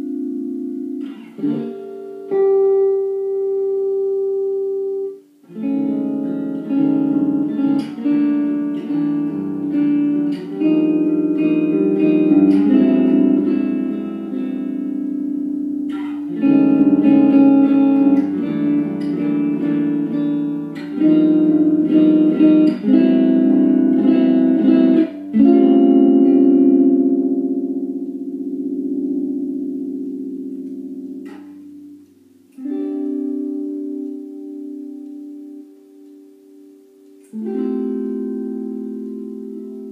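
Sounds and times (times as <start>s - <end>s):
electric guitar strummed chords: 0.0s - 39.9s.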